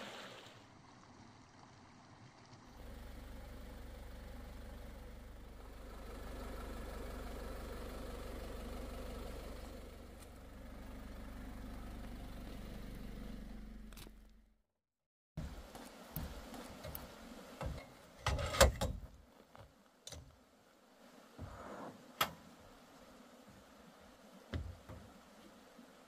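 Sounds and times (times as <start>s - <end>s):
truck engine idling: 0.8s - 14.4s.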